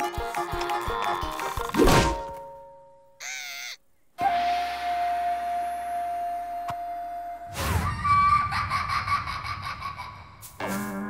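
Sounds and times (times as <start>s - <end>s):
short wavering cry: 3.2s - 3.8s.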